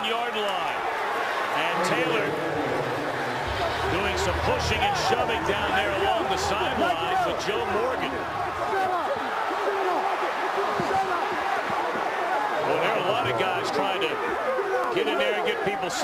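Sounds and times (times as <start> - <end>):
players shouting: 0.0 - 16.0
stadium crowd: 0.0 - 16.0.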